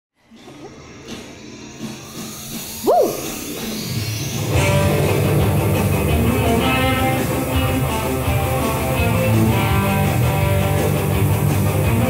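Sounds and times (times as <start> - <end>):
rock instrumental with electric guitar: 2.6 - 12.0
swooping note: 2.8 - 7.3.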